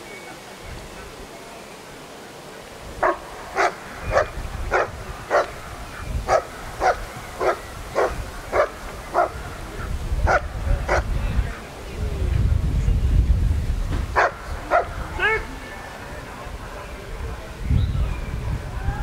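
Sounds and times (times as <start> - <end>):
dog barking sharply: 3.0 - 5.6, 6.3 - 9.4, 14.2 - 14.9.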